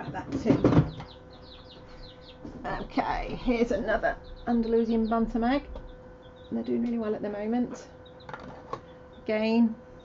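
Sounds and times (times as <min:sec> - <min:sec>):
chicks peeping: 0:00.0 - 0:10.0
faint steady hum: 0:00.0 - 0:10.0.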